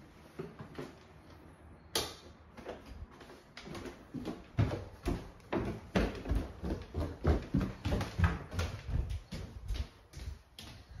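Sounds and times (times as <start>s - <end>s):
footsteps: 2.5s - 11.0s.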